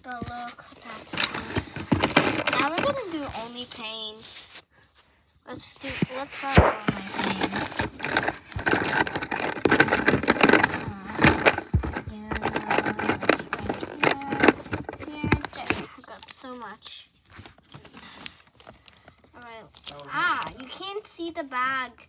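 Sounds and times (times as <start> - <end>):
packaging crinkling and rustling: 0.5 - 3.4, 5.8 - 20.8
plastic toys clicking together: 6.9 - 17.0, 18.7 - 20.8.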